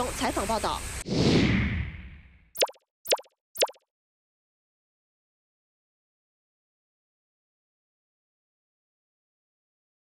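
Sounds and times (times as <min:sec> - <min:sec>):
pop sound effects: 0:02.6 - 0:03.8.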